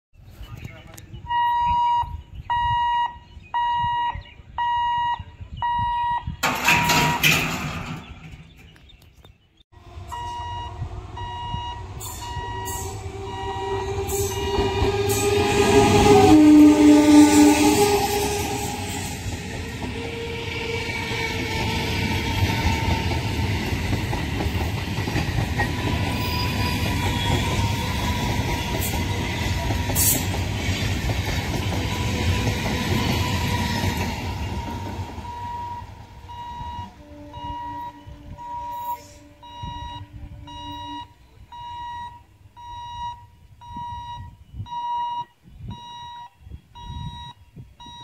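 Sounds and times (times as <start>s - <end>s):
electronic beeps: 1.2s - 6.5s, 10.1s - 14.8s, 35.2s - 48.0s
train horn note: 9.8s - 21.6s, 31.8s - 41.2s
train wheels rumbling on rails: 9.8s - 42.0s.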